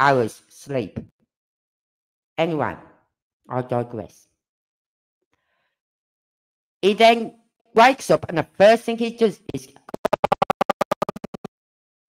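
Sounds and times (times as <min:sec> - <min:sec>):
buzzing glitchy stutter: 0:09.9 - 0:11.5.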